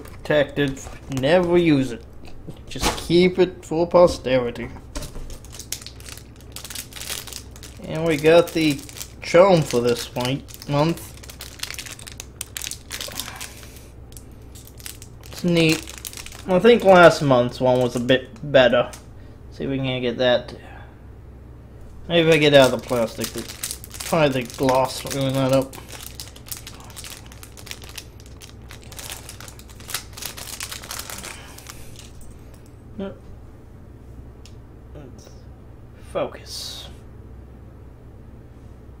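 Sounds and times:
plastic packaging crinkling: 0:00.0 - 0:02.1, 0:05.1 - 0:19.0, 0:22.2 - 0:32.6.

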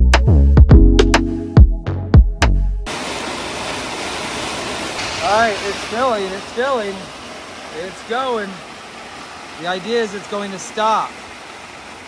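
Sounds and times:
electronic music with bass drum: 0:00.0 - 0:02.9
grain pouring down a chute: 0:02.9 - 0:07.0.

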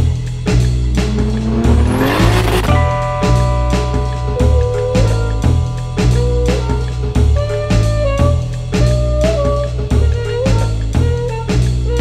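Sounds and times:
car engine revving: 0:00.4 - 0:08.9
background music with drum beat: 0:04.4 - 0:12.0.

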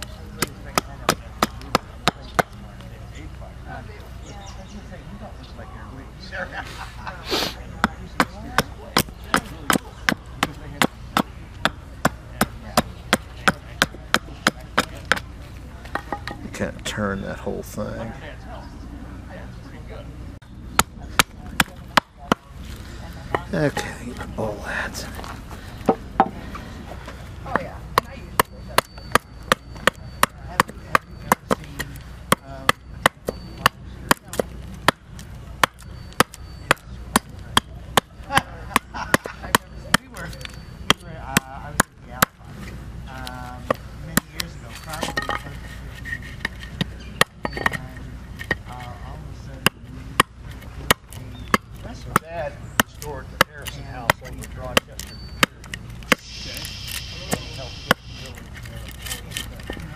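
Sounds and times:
hatchet chopping wood: 0:00.0 - 0:02.6, 0:07.8 - 0:16.4, 0:20.7 - 0:22.5, 0:27.5 - 0:42.4, 0:43.6 - 0:45.5, 0:46.4 - 0:48.8, 0:49.6 - 0:56.3.

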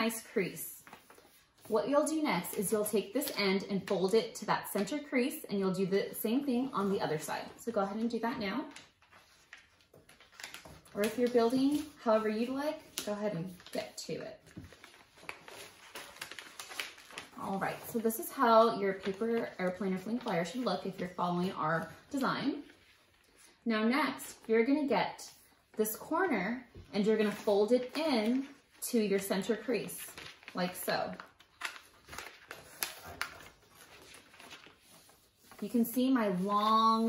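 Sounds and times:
paper rustling and crackling: 0:00.2 - 0:04.1, 0:06.0 - 0:23.6, 0:26.7 - 0:37.0.

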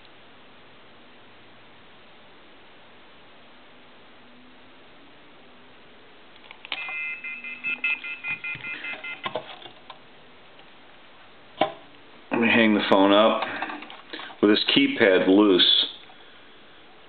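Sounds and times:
touch-tone keypad beeps: 0:06.8 - 0:09.3.

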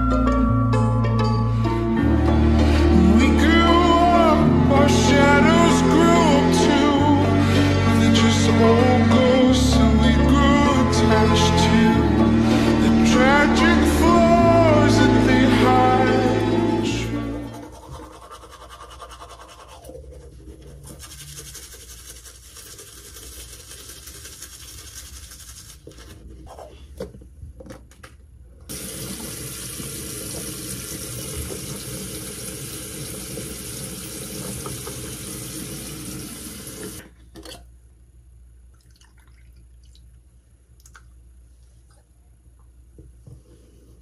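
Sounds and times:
toothbrush scrubbing teeth: 0:17.5 - 0:26.5
sink faucet running: 0:28.7 - 0:37.0.

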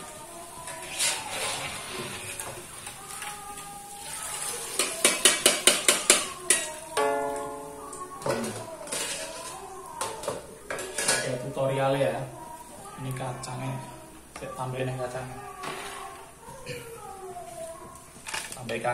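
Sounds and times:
metal scraping and clattering in wok: 0:08.4 - 0:09.6.

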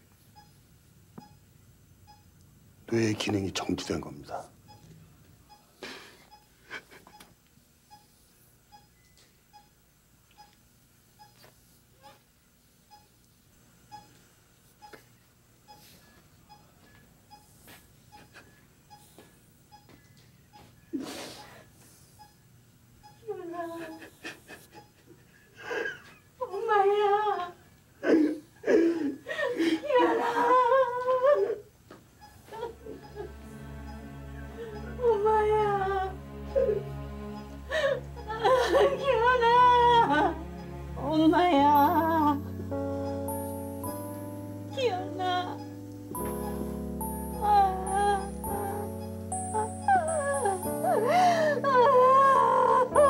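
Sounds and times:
heart monitor beeping: 0:00.3 - 0:01.5, 0:02.1 - 0:04.0, 0:04.6 - 0:12.2, 0:12.9 - 0:13.2, 0:13.9 - 0:25.0, 0:32.2 - 0:36.8, 0:41.7 - 0:53.0.

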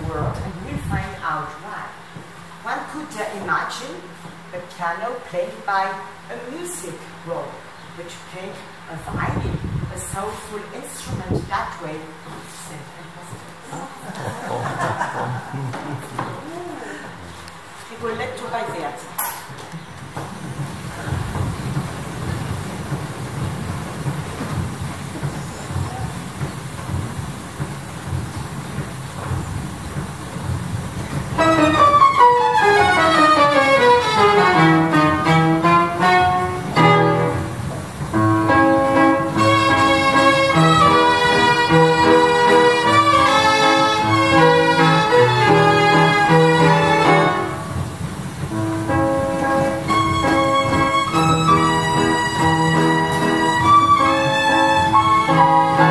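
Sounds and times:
low running mechanism noise: 0:00.0 - 0:55.9
violins and piano playing: 0:31.0 - 0:55.9.

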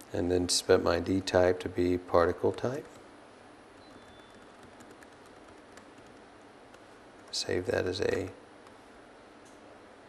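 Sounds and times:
room noise: 0:00.0 - 0:10.0
typing on computer keyboard: 0:03.8 - 0:07.4.

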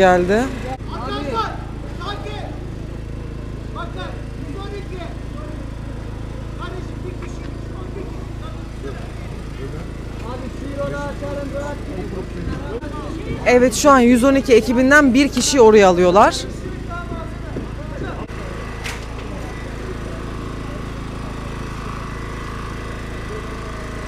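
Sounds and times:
quiet crowd voices: 0:00.0 - 0:24.0.

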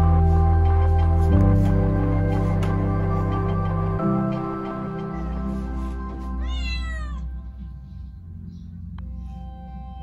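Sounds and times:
soft background music: 0:00.0 - 0:10.0
kitten meowing: 0:06.4 - 0:07.3.

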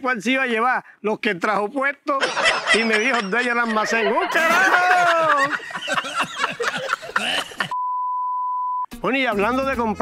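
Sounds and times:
person speaking: 0:01.2 - 0:07.8
censor bleep: 0:07.7 - 0:08.9.

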